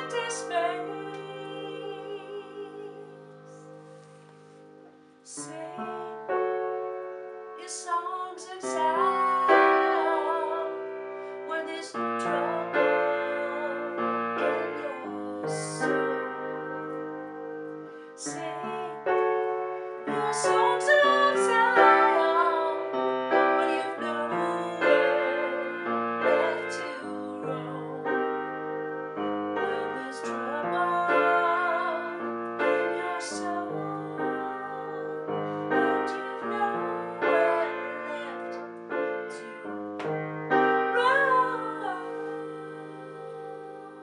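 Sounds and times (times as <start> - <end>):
woman singing: 0.0 - 3.8, 5.2 - 6.8, 7.6 - 28.6, 29.2 - 44.0
acoustic piano chords: 0.0 - 44.0.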